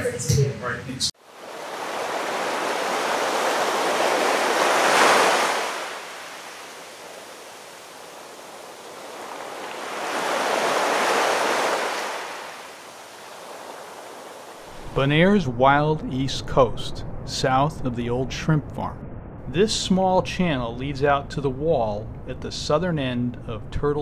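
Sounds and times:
ocean waves breaking: 0:01.2 - 0:16.4.

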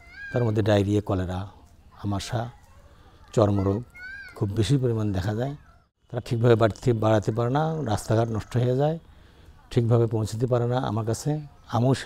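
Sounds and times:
man speaking in a low voice: 0:00.3 - 0:02.6, 0:03.3 - 0:09.1, 0:09.7 - 0:12.0.

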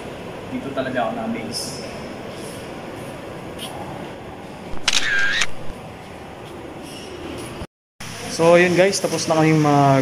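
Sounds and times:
steady background noise: 0:00.0 - 0:10.0
camera shutter: 0:04.7 - 0:05.7.

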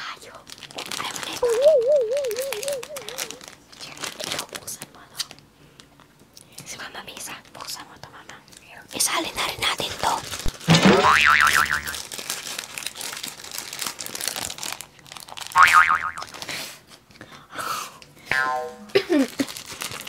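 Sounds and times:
plastic snack packets crinkling: 0:00.2 - 0:06.1, 0:09.7 - 0:10.8, 0:11.6 - 0:15.6, 0:16.3 - 0:16.5, 0:19.1 - 0:20.0
loud warbling tone: 0:01.4 - 0:03.4, 0:10.7 - 0:12.0, 0:18.3 - 0:19.0.

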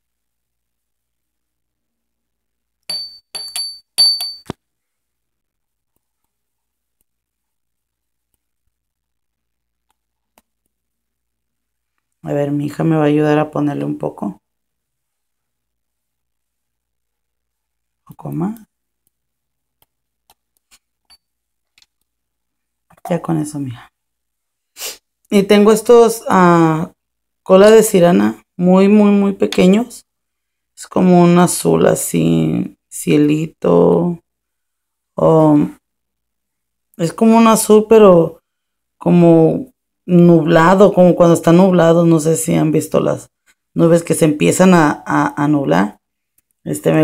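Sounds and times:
glass vial clinking on glass bowl: 0:02.9 - 0:04.5, 0:21.1 - 0:21.3
glitter tapping into plastic cup: 0:02.9 - 0:04.6.

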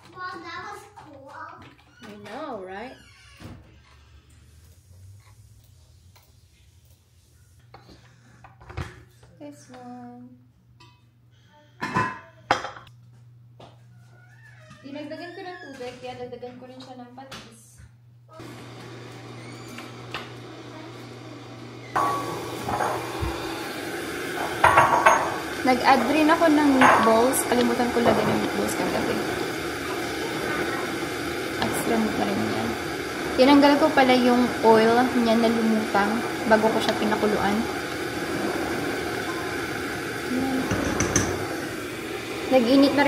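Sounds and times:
kitchen appliance rushing noise: 0:18.4 - 0:43.0
spoon knocking against pot: 0:24.4 - 0:25.4, 0:40.7 - 0:41.5.

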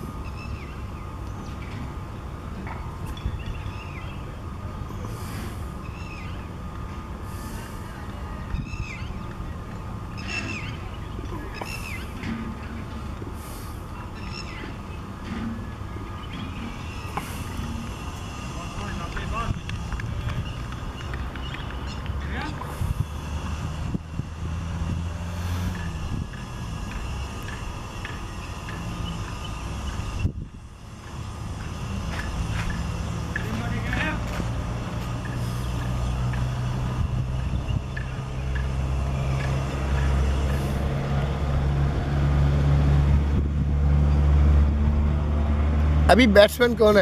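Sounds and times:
low rumble of wind or traffic: 0:00.0 - 0:47.0.

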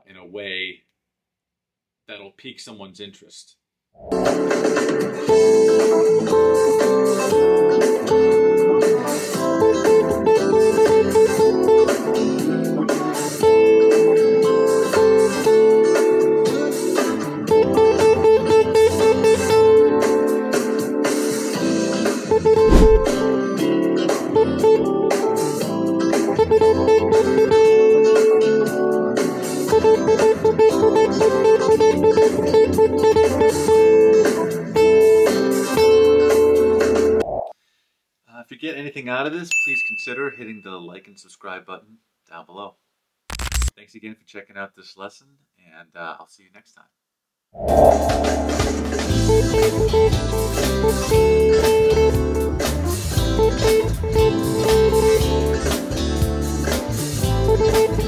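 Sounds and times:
blues backing track: 0:04.2 - 0:21.7, 0:48.5 - 0:58.0.

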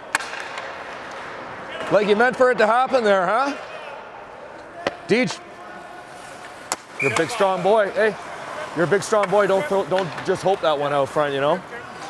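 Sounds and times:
hockey puck or stick crack: 0:00.0 - 0:02.0, 0:06.0 - 0:10.8
indoor rink background noise: 0:00.0 - 0:12.0.

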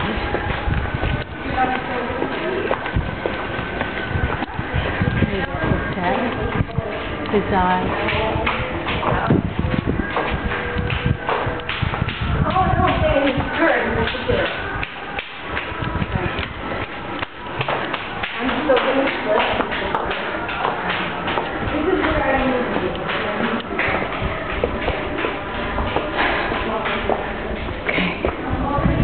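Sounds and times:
faint voices: 0:00.0 - 0:29.0
footsteps on stone paving: 0:00.0 - 0:29.0
irregular taps and knocks: 0:08.0 - 0:27.2.

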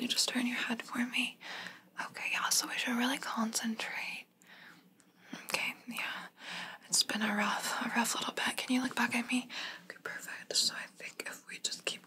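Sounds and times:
woman whispering: 0:00.0 - 0:01.4, 0:02.0 - 0:04.3, 0:05.4 - 0:12.0.

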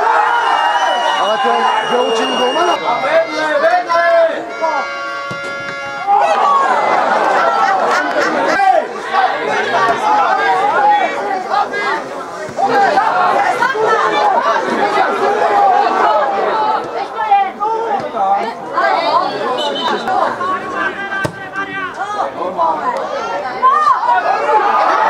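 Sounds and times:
voices talking over one another: 0:01.2 - 0:05.0, 0:05.9 - 0:25.0.

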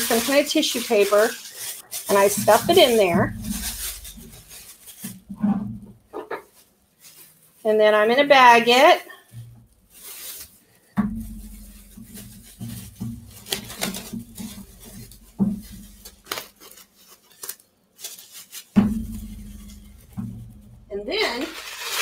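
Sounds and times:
plastic bag and bubble wrap crinkling: 0:00.0 - 0:22.0.

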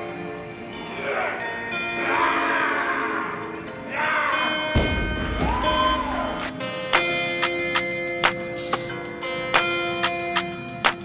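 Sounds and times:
background music with sustained tones: 0:00.0 - 0:11.0.

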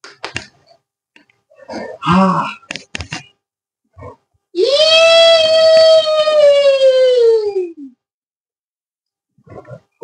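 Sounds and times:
high-pitched vocal howl: 0:04.6 - 0:07.9.

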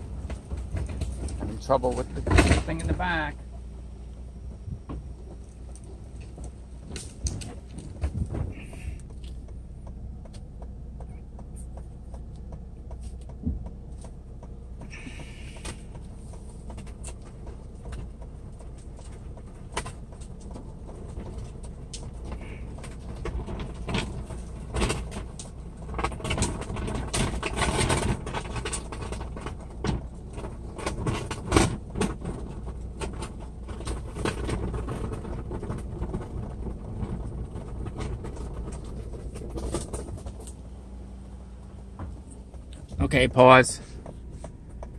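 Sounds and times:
knocks and rattles: 0:00.0 - 0:03.4, 0:04.5 - 0:40.8, 0:41.4 - 0:44.9
car engine humming: 0:00.0 - 0:44.9.

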